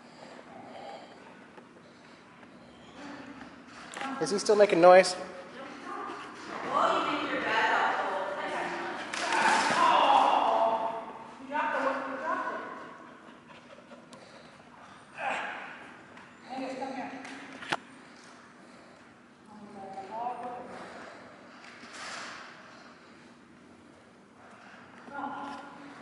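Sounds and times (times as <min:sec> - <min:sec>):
indistinct voices echoing: 0:03.0 - 0:13.3.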